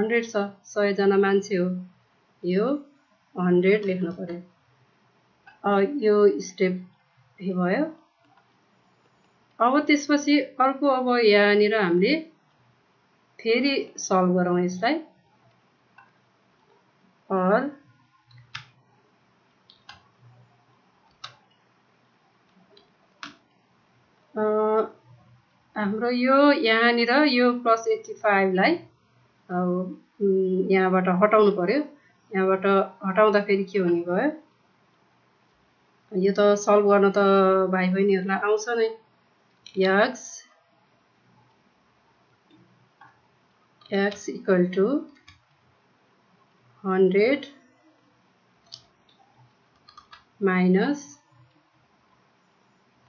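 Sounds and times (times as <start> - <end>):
person speaking: 0.0 - 1.8, 2.4 - 2.8, 3.4 - 4.4, 5.5 - 8.0, 9.6 - 12.3, 13.4 - 15.1, 17.3 - 17.8, 24.4 - 25.0, 25.8 - 28.8, 29.5 - 34.4, 39.7 - 40.5, 43.8 - 45.3, 46.8 - 47.5, 50.0 - 51.2
keyboard typing clicks: 18.3 - 18.8, 19.6 - 20.1, 21.1 - 21.6, 45.1 - 45.6, 48.6 - 50.3.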